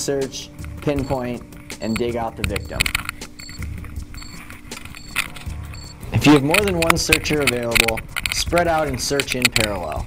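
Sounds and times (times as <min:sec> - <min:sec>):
scattered clicks and knocks: 0:00.6 - 0:10.0
short high beeps: 0:03.4 - 0:06.1.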